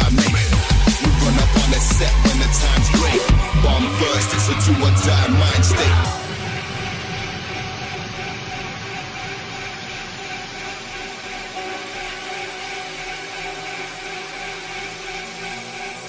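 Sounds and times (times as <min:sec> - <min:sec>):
droning synth texture: 0:00.0 - 0:16.0.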